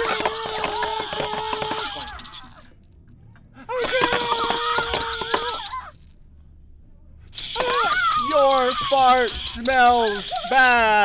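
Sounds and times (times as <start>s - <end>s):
loud rattle shaken fast: 0.0s - 2.6s, 3.8s - 6.1s, 7.4s - 11.0s
low hum: 0.0s - 9.7s
high voice yelling: 7.5s - 11.0s.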